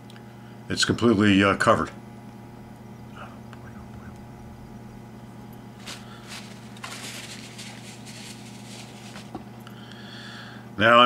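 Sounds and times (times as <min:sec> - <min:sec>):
low electrical hum: 0:00.0 - 0:11.0
hands rustling and brushing: 0:05.8 - 0:09.5.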